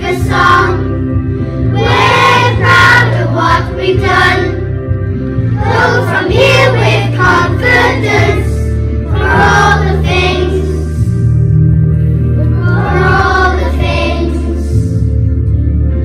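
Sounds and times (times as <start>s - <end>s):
children singing in unison: 0.0s - 1.0s, 1.7s - 4.6s, 5.6s - 11.2s, 12.4s - 15.1s
backing accompaniment: 0.0s - 16.0s.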